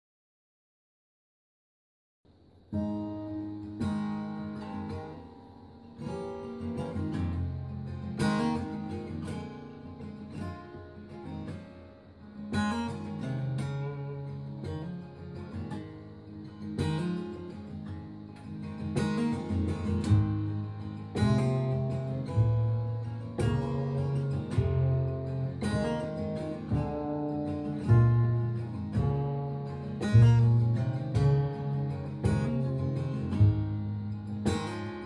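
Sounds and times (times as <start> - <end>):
acoustic guitar playing: 2.3 - 35.0.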